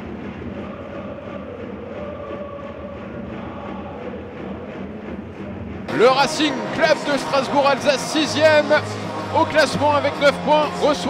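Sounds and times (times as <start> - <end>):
crowd singing or chanting: 0.0 - 11.0
stadium crowd din: 0.0 - 11.0.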